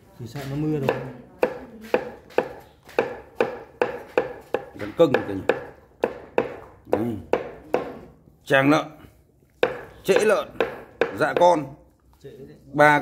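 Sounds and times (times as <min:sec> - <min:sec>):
cleaver chopping on cutting board: 0:00.4 - 0:08.1, 0:09.6 - 0:11.7.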